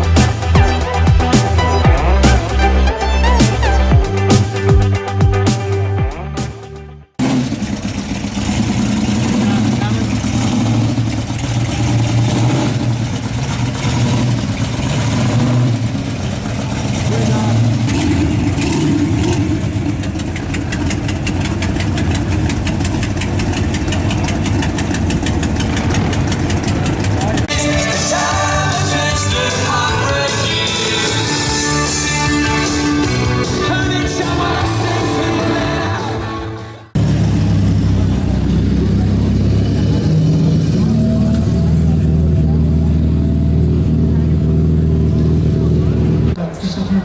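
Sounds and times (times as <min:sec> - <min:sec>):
crowd voices: 0:00.0 - 0:06.6, 0:16.2 - 0:47.0
music: 0:00.0 - 0:07.2, 0:27.5 - 0:37.0
car engine rumbling: 0:00.0 - 0:47.0.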